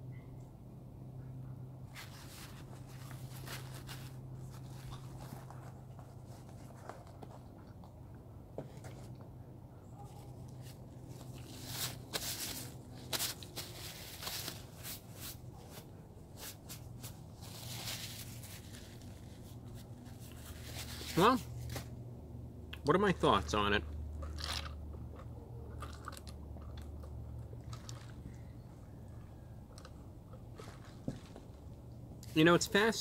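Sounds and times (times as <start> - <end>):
faint low hum: 0.0 - 33.0
paper napkin rustling: 1.9 - 7.1, 11.1 - 21.9
quiet chewing: 4.5 - 9.4, 24.2 - 32.3.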